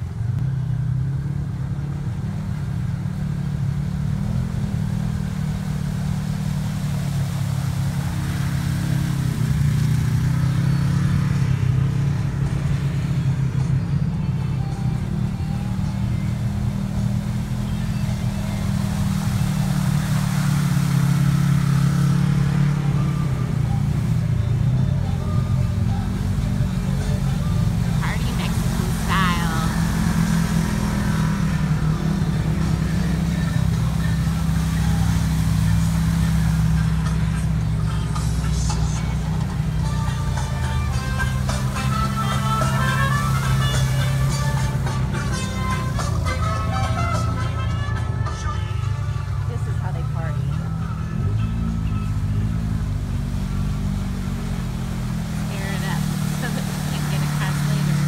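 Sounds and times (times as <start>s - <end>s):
utility vehicle engine revving: 0.0s - 58.0s
water and mud splashing: 0.0s - 58.0s.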